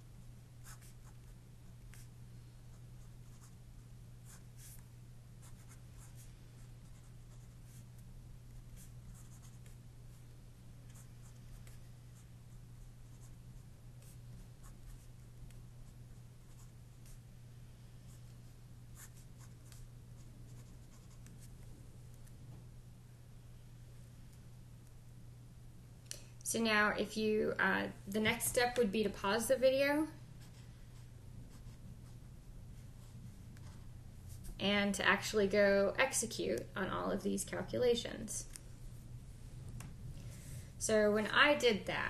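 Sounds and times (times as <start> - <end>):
low electrical hum: 0.0 - 42.0
pencil writing on paper: 0.6 - 2.1, 8.8 - 9.8.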